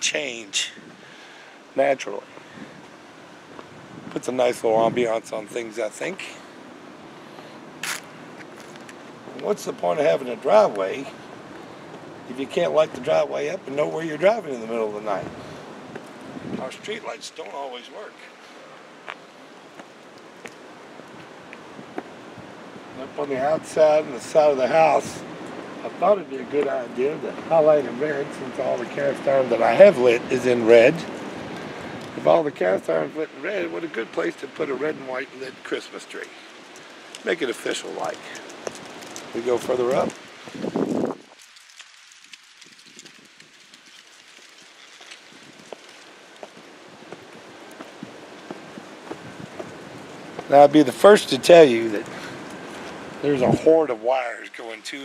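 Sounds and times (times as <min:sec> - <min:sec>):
faint steady hiss: 0:00.0 - 0:55.0
light wind on microphone: 0:02.2 - 0:05.4, 0:14.8 - 0:17.2, 0:38.2 - 0:41.4, 0:46.9 - 0:50.5
footsteps: 0:07.3 - 0:12.1, 0:14.8 - 0:22.1, 0:36.1 - 0:53.8
camera handling noise: 0:07.8 - 0:09.0.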